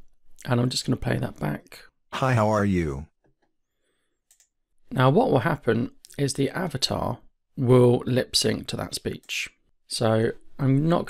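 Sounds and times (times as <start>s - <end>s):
computer mouse click: 4.2s - 4.6s.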